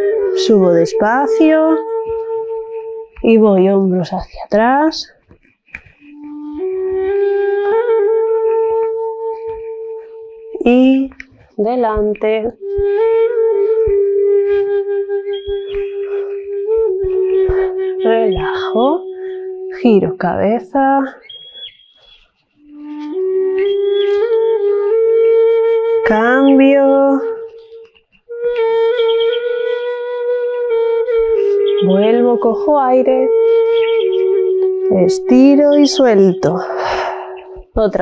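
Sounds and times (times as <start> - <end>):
flute-like wind instrument: 0.0 - 4.9, 5.8 - 38.0.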